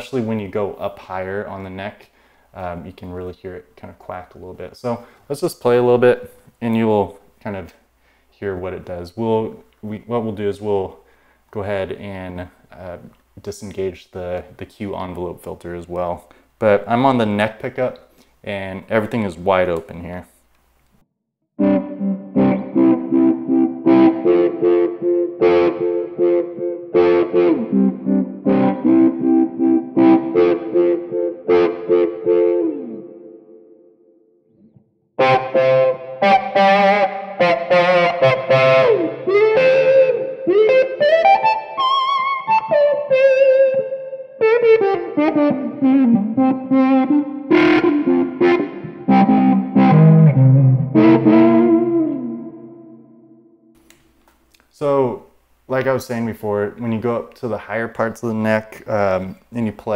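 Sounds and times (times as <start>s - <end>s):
electric guitar with auto-wah: 21.6s - 33.8s, 35.2s - 53.1s.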